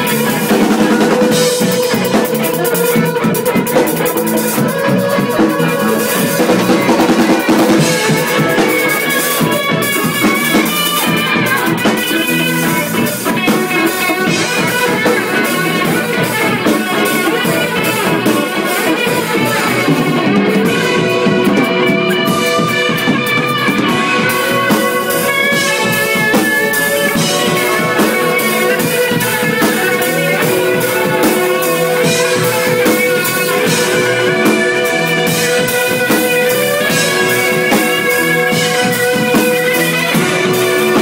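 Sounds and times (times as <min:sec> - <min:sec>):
drumming with cymbals: 0:00.0 - 0:41.0
electric guitar sustained notes: 0:00.0 - 0:41.0.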